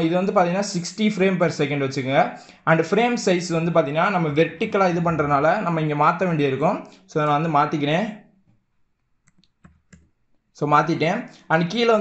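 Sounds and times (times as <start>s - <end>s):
keyboard and mouse clicks: 9.0s - 10.5s.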